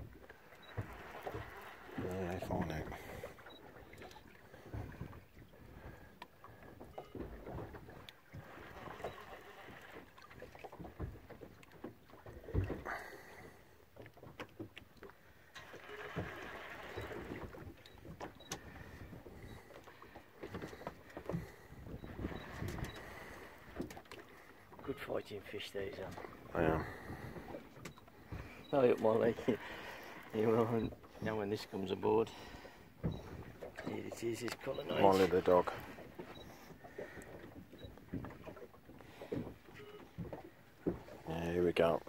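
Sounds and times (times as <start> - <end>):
water lapping against boat hull: 0.0 - 42.0.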